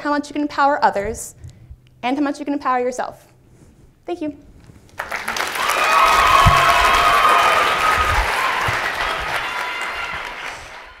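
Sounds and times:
audience applauding: 5.0s - 11.0s.

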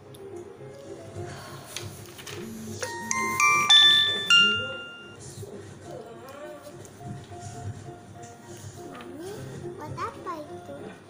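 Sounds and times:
bell-like chime tune: 2.8s - 5.2s.

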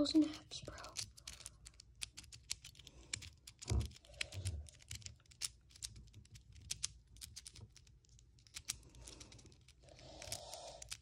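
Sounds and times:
puzzle cube plastic clicks: 0.2s - 11.0s.

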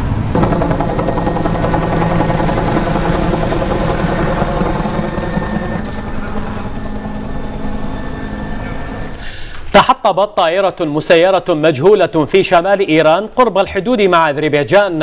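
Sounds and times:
helicopter rotor chopping: 0.3s - 9.4s.

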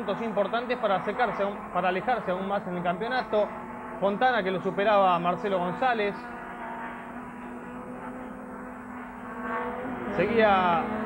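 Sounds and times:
racing car engines drone: 0.0s - 11.0s.

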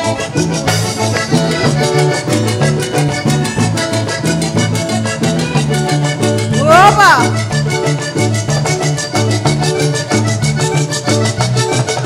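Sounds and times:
accordion melody: 0.0s - 12.0s
electric bass: 0.0s - 12.0s
electric guitar: 0.0s - 12.0s
percussion: 0.0s - 12.0s.

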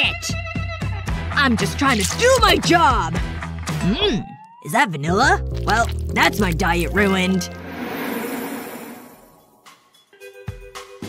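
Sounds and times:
whoosh: 7.3s - 9.8s.

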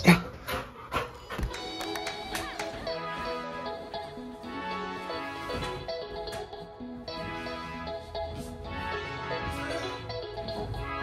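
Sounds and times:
dog panting and sniffing: 0.0s - 1.8s
background music: 1.0s - 11.0s.

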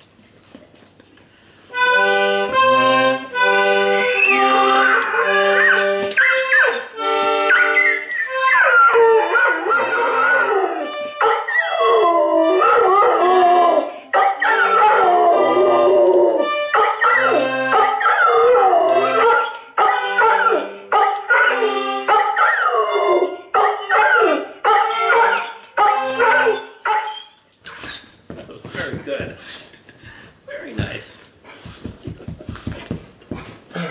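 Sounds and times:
button accordion chords: 1.7s - 8.7s, 9.7s - 11.3s, 16.4s - 17.9s, 21.5s - 22.2s
dog howling: 7.5s - 27.4s.

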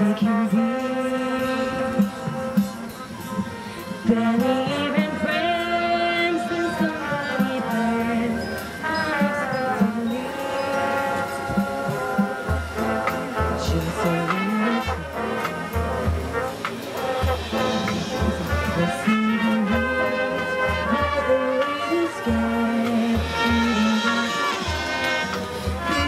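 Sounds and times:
brass sustained chords: 0.0s - 26.0s
low pulsing drum beat: 0.0s - 26.0s.

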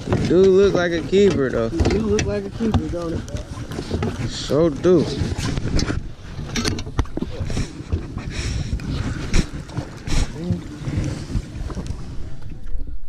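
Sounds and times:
gear knocking and clattering: 0.0s - 3.2s
wind noise on microphone: 0.0s - 13.0s.

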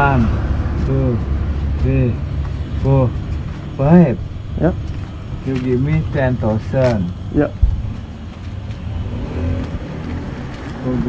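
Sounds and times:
passing road traffic rumble: 0.0s - 11.0s.

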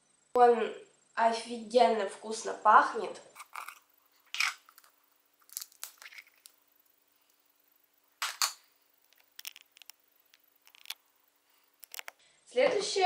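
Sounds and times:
plastic film crinkling: 3.4s - 6.6s, 9.1s - 10.0s, 10.6s - 11.0s.

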